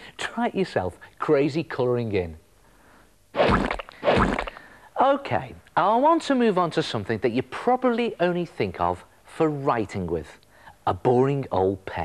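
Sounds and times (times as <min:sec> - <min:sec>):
noisy sound-effect bursts: 0:03.4 - 0:04.6.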